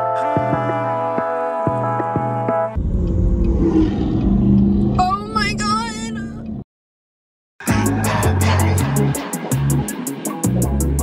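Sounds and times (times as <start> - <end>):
car engine accelerating: 2.8 - 6.6.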